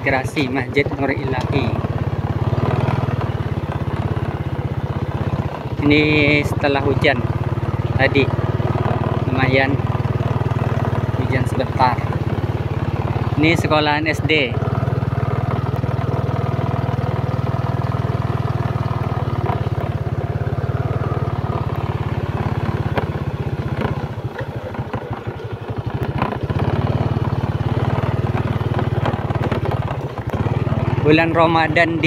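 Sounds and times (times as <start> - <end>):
small motorcycle engine running: 0.0 - 32.0.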